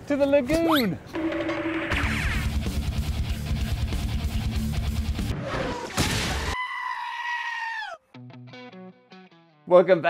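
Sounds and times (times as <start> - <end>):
long high-pitched cry: 6.6 - 8.0.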